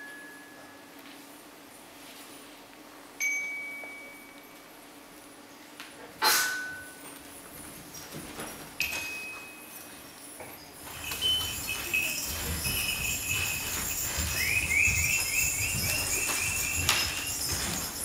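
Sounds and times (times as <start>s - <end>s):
jingling bells: 6.8s - 18.0s
shimmering tremolo: 9.7s - 18.0s
bell chime struck: 10.9s - 18.0s.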